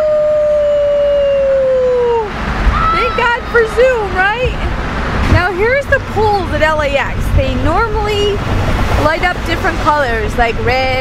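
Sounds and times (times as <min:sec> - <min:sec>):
child singing long woo: 0:00.0 - 0:03.2
car rumble: 0:00.0 - 0:11.0.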